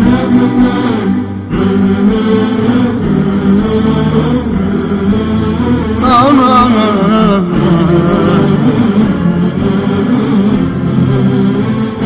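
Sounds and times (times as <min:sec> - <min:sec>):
chanted vocal melody: 0:00.0 - 0:12.0.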